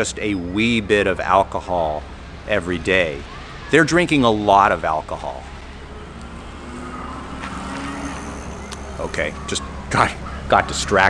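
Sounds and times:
motor vehicle passing: 0:00.6 - 0:11.0.

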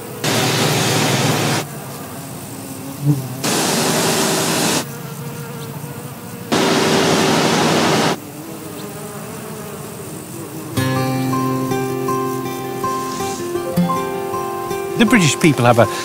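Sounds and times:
bumblebees buzzing: 0:00.0 - 0:16.0.

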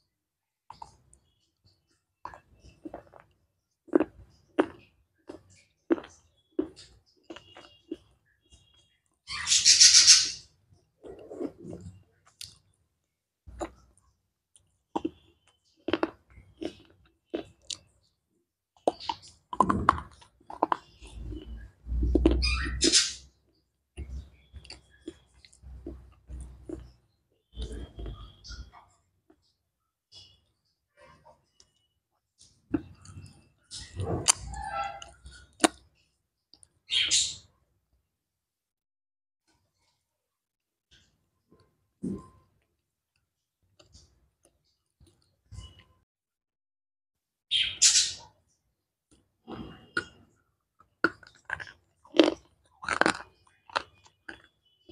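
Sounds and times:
crunchy chewing of wafer bar: 0:02.2 - 0:08.1, 0:13.5 - 0:17.9, 0:18.8 - 0:23.0, 0:49.1 - 0:54.9.

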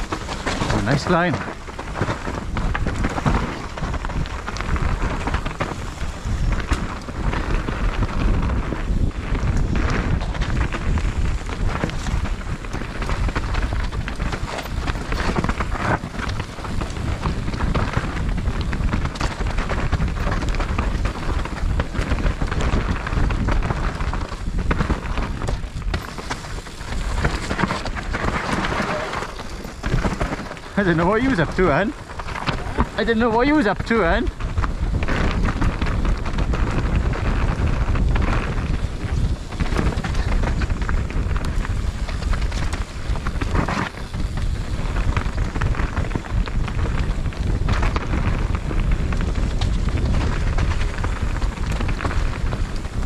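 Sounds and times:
bike clattering: 0:00.0 - 0:53.0
bike tyres crunching over stones: 0:00.0 - 0:53.0
wind rumble on microphone: 0:00.0 - 0:53.0.

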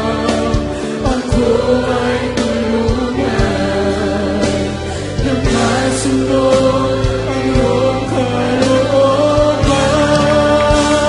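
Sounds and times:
choir singing worship song: 0:00.0 - 0:11.0
low beats: 0:00.0 - 0:11.0
musical accompaniment: 0:00.0 - 0:11.0.

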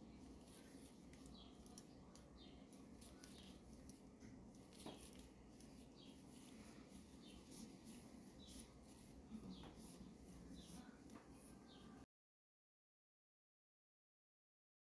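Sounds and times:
low room hum: 0:00.0 - 0:12.1
knitting needles clicking: 0:00.5 - 0:05.8
yarn rustling: 0:02.6 - 0:12.0.

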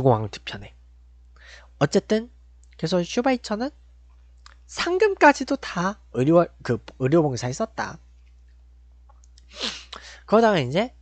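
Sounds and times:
man speaking: 0:00.0 - 0:00.8, 0:01.8 - 0:03.8, 0:04.7 - 0:08.0, 0:10.0 - 0:11.0
low steady hum: 0:00.0 - 0:11.0.

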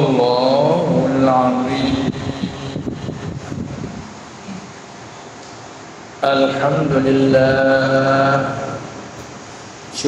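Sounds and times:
ventilation fans rushing: 0:00.0 - 0:10.0.

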